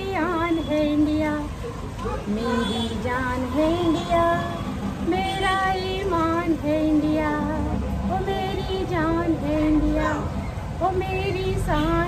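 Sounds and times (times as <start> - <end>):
woman singing: 0.0 - 1.6, 2.2 - 12.0.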